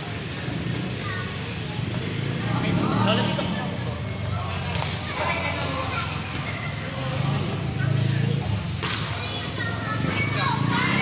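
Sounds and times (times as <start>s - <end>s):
murmur of voices: 0.0s - 11.0s
hand slapping volleyball: 8.8s - 9.2s.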